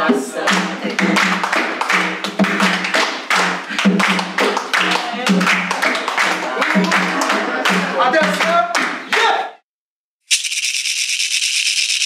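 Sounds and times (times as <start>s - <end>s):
voices singing: 0.0s - 1.8s
hand drum beating: 0.1s - 6.0s
people clapping in time: 0.1s - 9.4s.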